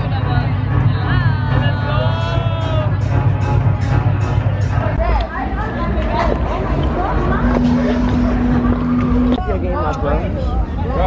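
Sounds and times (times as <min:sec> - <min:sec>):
low rumble on microphone: 0:00.0 - 0:11.0
people talking outdoors: 0:00.0 - 0:11.0.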